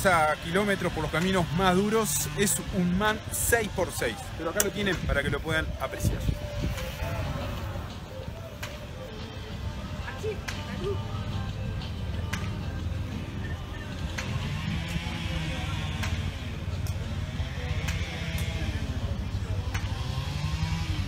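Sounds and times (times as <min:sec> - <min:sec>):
background music: 0:00.0 - 0:21.0
low engine rumble: 0:00.0 - 0:21.0
voices: 0:00.0 - 0:21.0.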